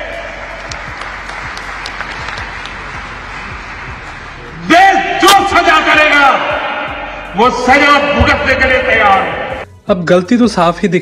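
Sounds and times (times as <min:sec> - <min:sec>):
large audience applauding: 0:00.0 - 0:04.6.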